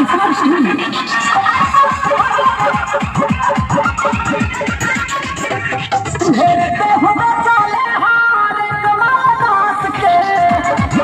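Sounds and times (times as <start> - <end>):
loud dance music from loudspeakers: 0.0 - 11.0.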